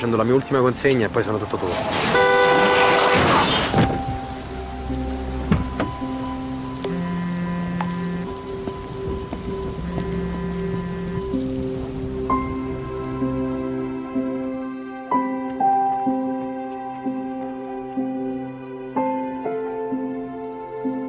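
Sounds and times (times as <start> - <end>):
rain falling on road: 0.0 - 14.4
slow music of held notes: 3.6 - 21.0.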